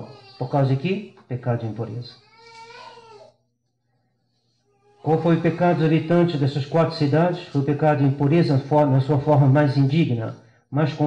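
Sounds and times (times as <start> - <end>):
preacher's voice: 5.1 - 11.0.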